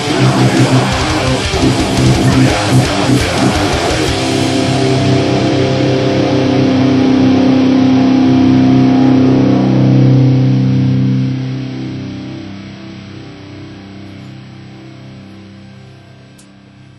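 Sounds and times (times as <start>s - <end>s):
electric guitar chord ringing: 0.0s - 16.9s.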